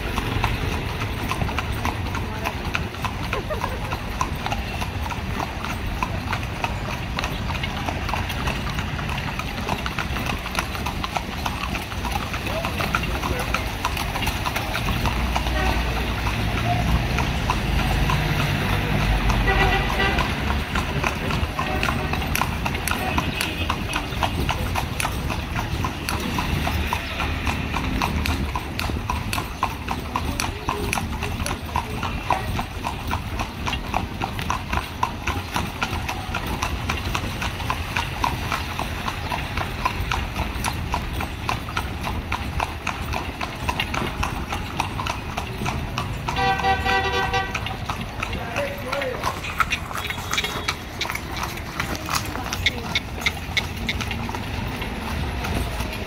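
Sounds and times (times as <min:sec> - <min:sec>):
horse hooves clip-clopping on pavement: 0:00.0 - 0:56.0.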